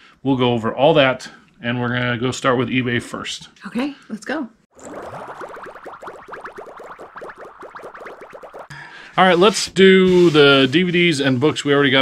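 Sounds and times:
rising cartoon bloops: 4.8s - 8.7s.

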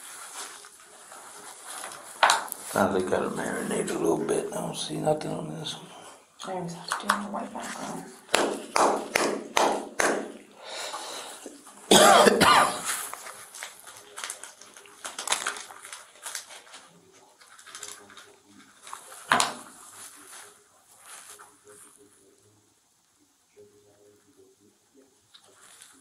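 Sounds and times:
plastic packet crinkling: 12.8s - 21.6s.

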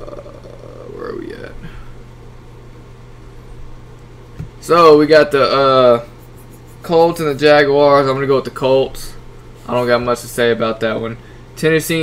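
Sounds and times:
steady low hum with hiss: 0.0s - 12.0s.

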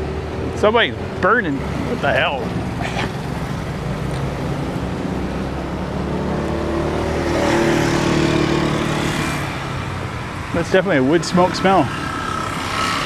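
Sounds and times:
road traffic: 0.0s - 13.0s
vehicle passing close: 0.0s - 13.0s.

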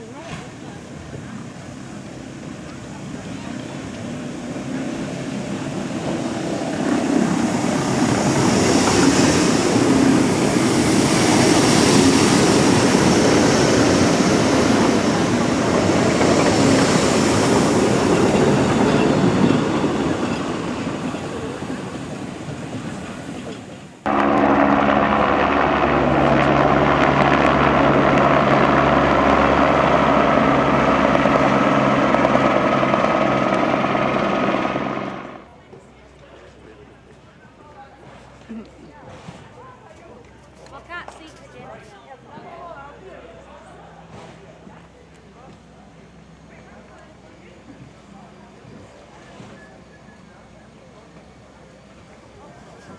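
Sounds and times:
electric train running past: 0.9s - 35.6s.

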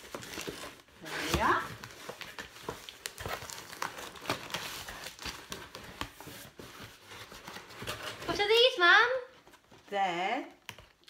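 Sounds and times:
cardboard box rustling and crinkling: 0.0s - 8.8s.

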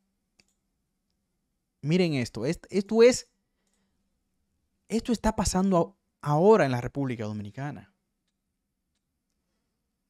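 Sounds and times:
computer mouse click: 0.3s - 1.2s
man speaking: 1.8s - 3.3s, 4.9s - 7.9s.

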